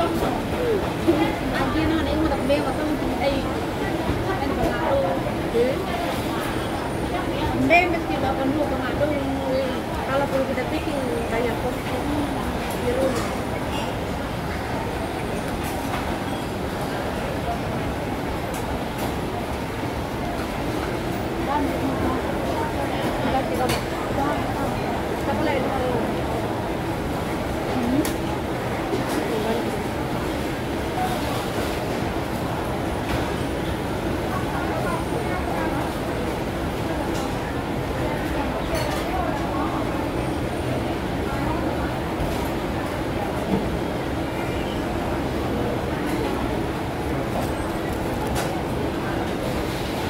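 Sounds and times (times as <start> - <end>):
faint voices talking: 0.0 - 50.0
low rumbling background noise: 0.0 - 50.0.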